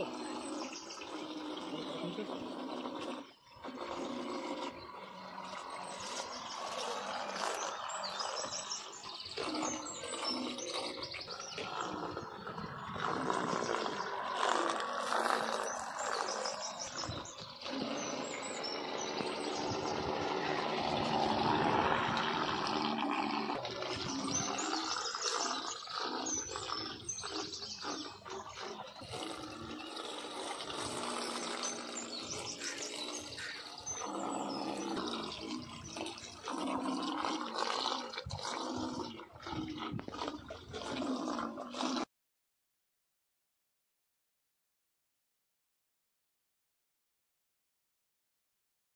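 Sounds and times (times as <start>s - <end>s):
birds chirping: 0.0s - 40.1s
rushing water: 13.0s - 29.4s.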